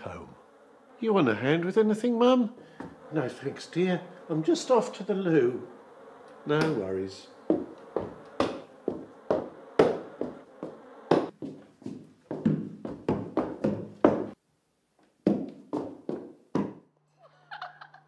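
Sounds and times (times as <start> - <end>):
heavy footsteps on wooden floor: 2.6 - 3.0, 7.4 - 14.4, 15.2 - 16.8.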